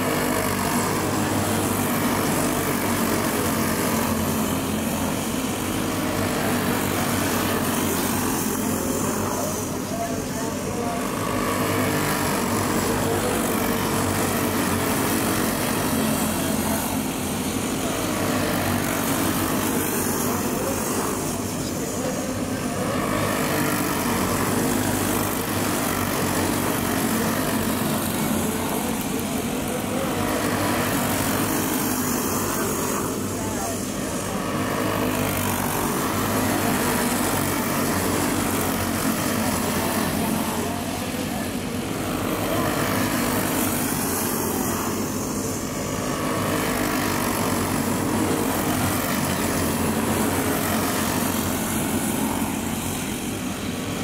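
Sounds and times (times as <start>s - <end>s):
racing kart engines droning: 0.0s - 54.0s.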